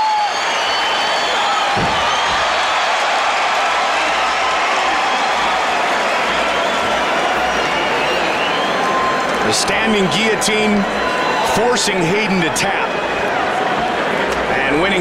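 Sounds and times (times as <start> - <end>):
high whistles: 0.0 - 3.1, 5.2 - 9.4
crowd cheering and applauding: 0.0 - 15.0.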